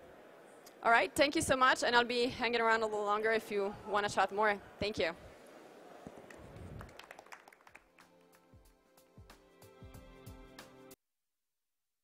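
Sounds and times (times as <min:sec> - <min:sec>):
sparse audience clapping: 0:06.1 - 0:08.7.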